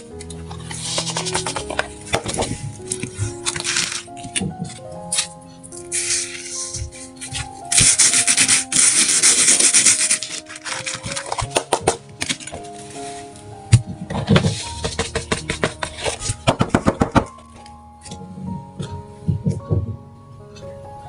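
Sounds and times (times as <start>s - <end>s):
soft background music: 0.0s - 21.0s.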